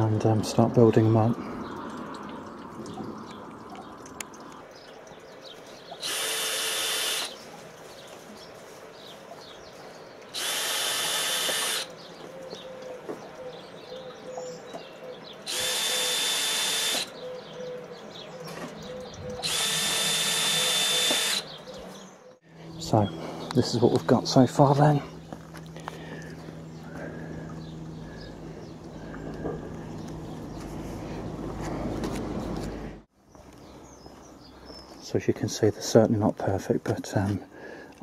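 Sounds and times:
cordless drill motor whine: 6.0s - 7.4s, 10.3s - 11.9s, 15.5s - 17.1s, 19.4s - 21.6s.

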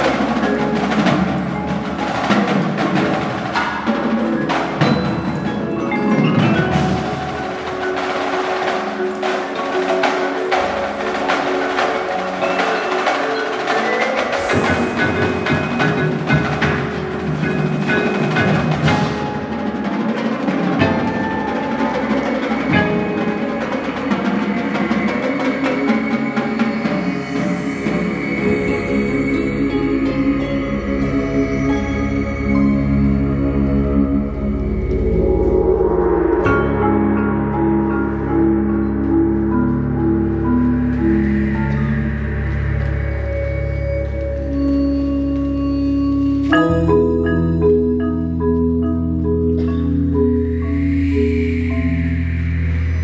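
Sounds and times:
marimba chords: 0.0s - 53.0s
struck percussion: 0.0s - 53.0s.

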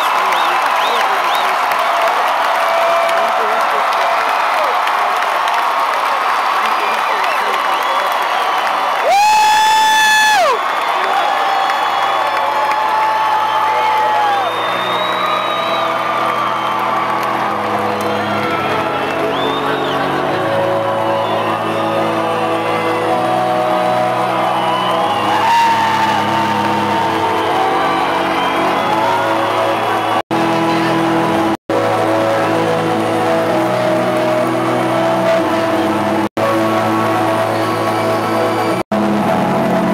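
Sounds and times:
crowd cheering and whooping: 0.0s - 39.9s
loud high whoop: 4.0s - 20.0s, 21.2s - 30.2s.

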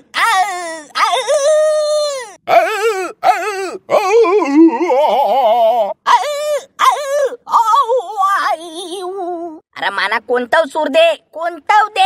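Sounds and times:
high-pitched cartoon voice crying: 0.0s - 9.6s.

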